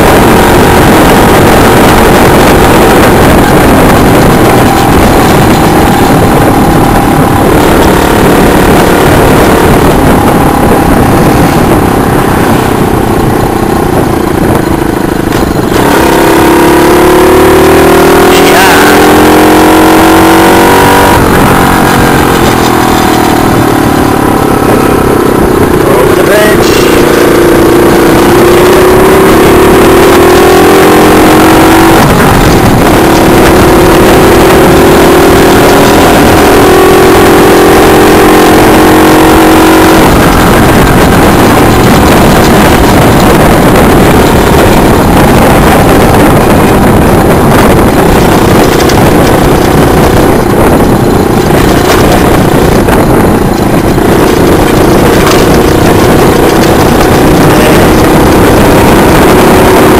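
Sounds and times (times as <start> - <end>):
small motorcycle engine revving: 0.0 - 59.9.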